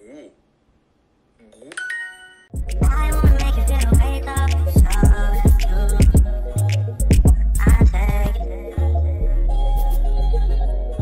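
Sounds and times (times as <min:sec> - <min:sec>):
phone answer chime: 0:01.8 - 0:02.6
hip-hop music with heavy bass: 0:02.6 - 0:11.0.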